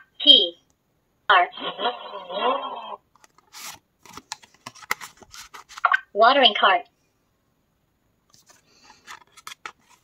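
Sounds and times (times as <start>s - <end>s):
card sliding scrape: 3.2s - 5.8s, 8.4s - 10.0s.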